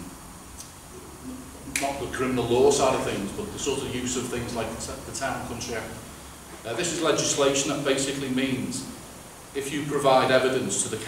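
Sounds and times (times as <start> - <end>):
man talking: 1.6 - 11.0
hand clap: 1.7 - 2.0.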